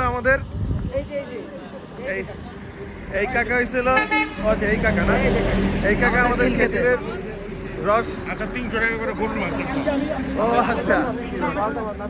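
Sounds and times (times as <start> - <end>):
men talking: 0.0 - 12.0
passing road traffic: 0.0 - 12.0
vehicle horn: 4.0 - 4.5.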